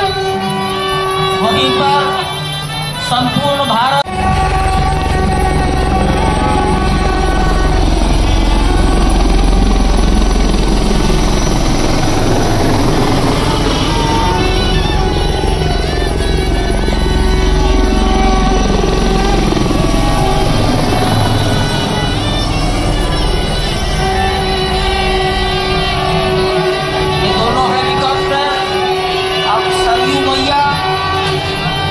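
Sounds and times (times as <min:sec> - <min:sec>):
helicopter rotor beating: 0:00.0 - 0:31.9
music playing: 0:00.0 - 0:31.9.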